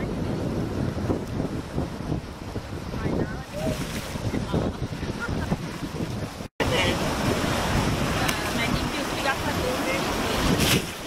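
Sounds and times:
ocean surf washing: 0.0 - 11.0
wind buffeting microphone: 0.0 - 11.0.

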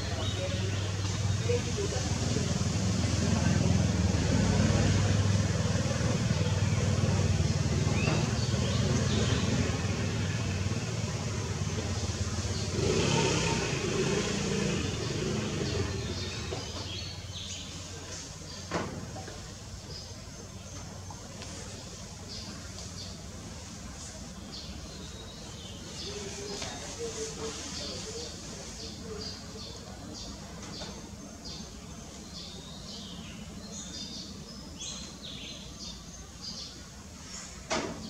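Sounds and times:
vehicle engine rumbling: 0.0 - 31.1.

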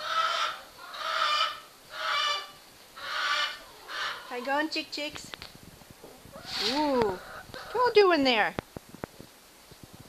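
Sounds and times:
barnyard bird calling: 0.0 - 4.8, 6.3 - 8.5.

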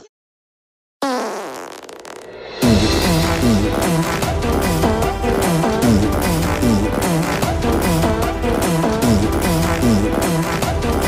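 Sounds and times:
drawn-out fart: 1.0 - 11.0
loud music with steady beat: 2.6 - 11.0.

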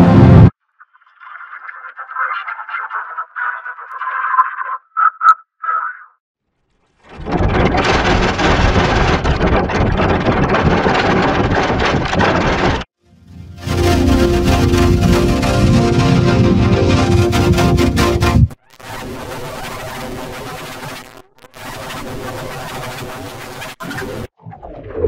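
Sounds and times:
loud distorted noise: 0.0 - 0.5, 7.4 - 24.3.

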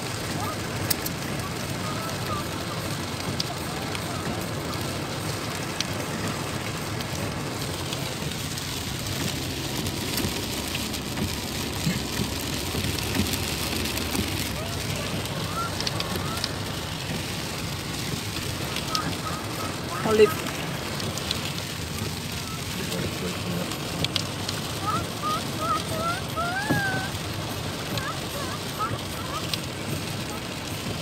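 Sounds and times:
car road noise rumble: 0.0 - 31.0
rain hissing on car: 0.0 - 31.0
light ticks: 0.8 - 1.7.

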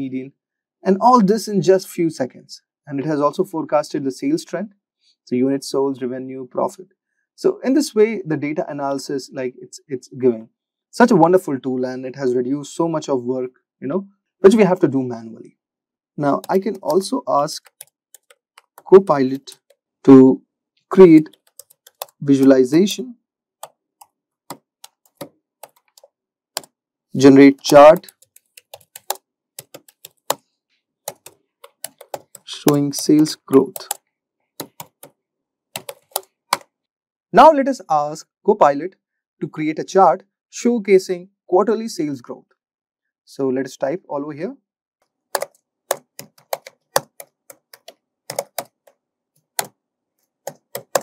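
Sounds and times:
computer keyboard key clicks: 21.3 - 22.2, 28.0 - 30.4, 31.1 - 32.8, 35.8 - 36.7, 45.4 - 48.7, 50.5 - 51.0
keyboard keystroke clicks: 45.4 - 48.7, 50.5 - 51.0.

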